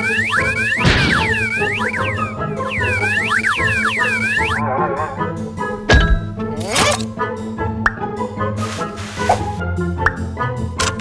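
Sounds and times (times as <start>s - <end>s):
springy cartoon boings: 0.0s - 4.6s
background music: 0.0s - 11.0s.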